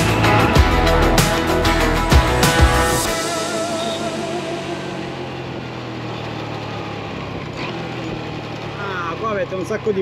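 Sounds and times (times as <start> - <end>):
motor scooter engine humming: 0.0 - 10.0.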